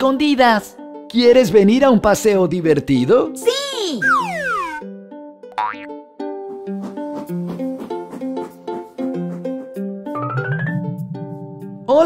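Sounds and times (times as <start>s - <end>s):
light background music: 0.0s - 12.0s
whistle-like falling glide: 4.0s - 4.8s.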